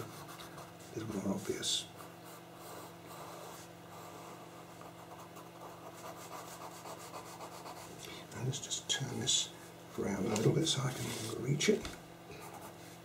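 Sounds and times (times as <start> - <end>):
pastel pencil scratching on paper: 2.0 - 7.9.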